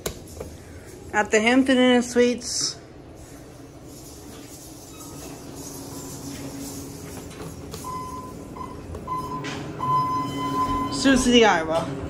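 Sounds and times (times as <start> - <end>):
low steady hum: 0.0 - 12.0
elevator high electronic beep: 7.6 - 11.4.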